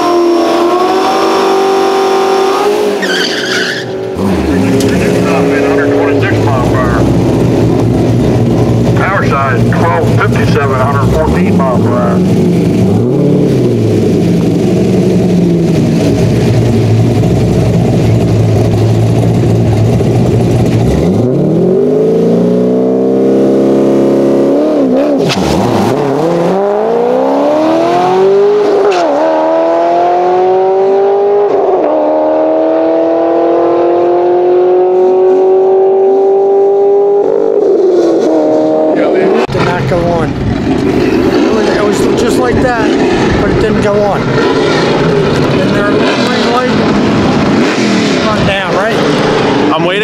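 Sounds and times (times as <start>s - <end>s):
car engine accelerating hard: 0.0s - 50.0s.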